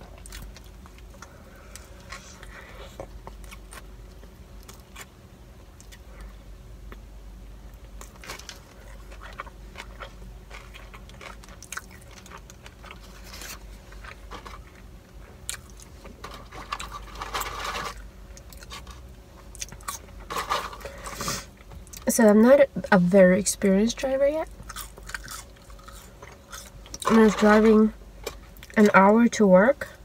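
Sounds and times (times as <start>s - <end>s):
crisp chewing crunches: 0.0s - 5.1s, 7.8s - 22.1s, 24.4s - 27.4s.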